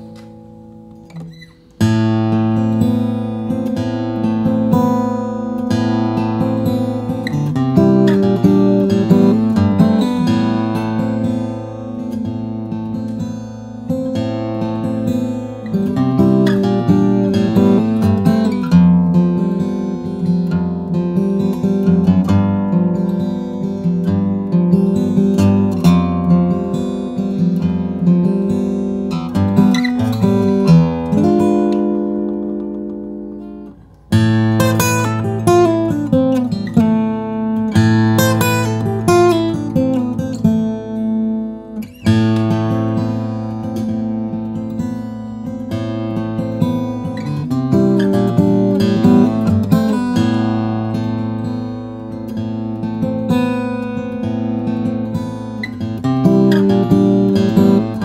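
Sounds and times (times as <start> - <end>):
fingerstyle acoustic guitar: 0.0 - 58.0.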